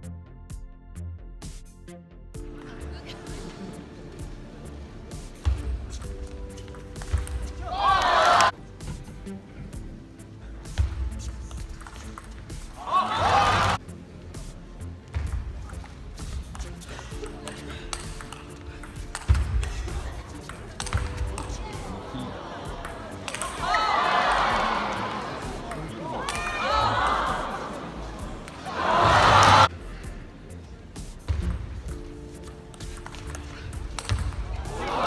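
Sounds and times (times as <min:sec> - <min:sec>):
background music: 0:00.0 - 0:35.0
loud shout: 0:07.6 - 0:08.5, 0:12.8 - 0:13.8, 0:23.4 - 0:25.4, 0:26.0 - 0:27.9, 0:28.6 - 0:29.7, 0:34.6 - 0:35.0
ping pong ball ticking: 0:11.5 - 0:12.4, 0:17.2 - 0:19.7, 0:22.8 - 0:23.6, 0:32.4 - 0:34.4.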